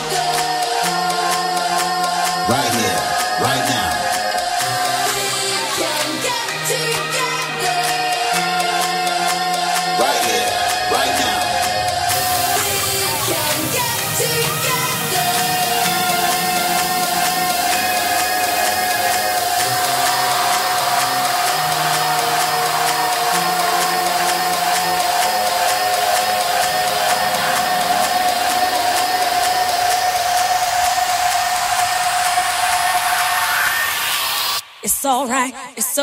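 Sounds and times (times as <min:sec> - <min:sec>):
sustained pad chords: 0:00.0 - 0:34.6
vocal: 0:00.0 - 0:36.0
rising noise sweep: 0:10.0 - 0:34.8.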